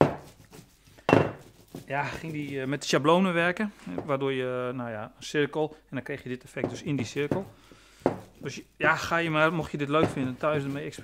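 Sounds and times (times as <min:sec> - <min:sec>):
plastic bottle knocking: 0:01.0 - 0:02.4, 0:06.6 - 0:09.0, 0:10.0 - 0:10.5.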